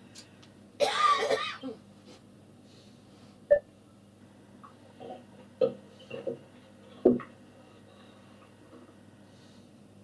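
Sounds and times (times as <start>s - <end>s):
person coughing: 0.8s - 1.8s.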